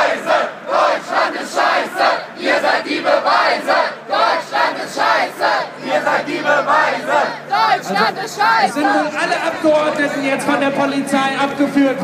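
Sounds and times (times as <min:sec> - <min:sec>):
crowd chanting and shouting: 0:00.0 - 0:12.0.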